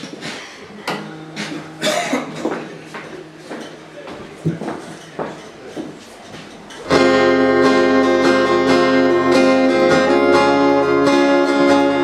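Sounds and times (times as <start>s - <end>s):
cough-like noise: 1.8s - 2.6s.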